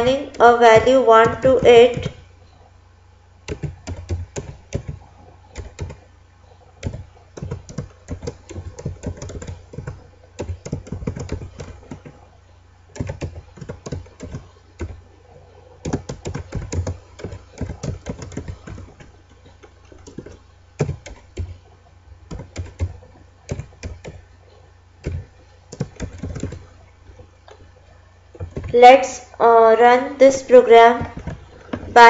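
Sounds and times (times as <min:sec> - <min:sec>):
computer keyboard typing: 0:00.0 - 0:02.2, 0:03.5 - 0:06.1, 0:06.8 - 0:12.2, 0:12.9 - 0:15.0, 0:15.8 - 0:21.6, 0:22.3 - 0:24.2, 0:25.0 - 0:26.7, 0:28.3 - 0:28.8, 0:31.0 - 0:31.4
low steady hum: 0:00.0 - 0:32.0.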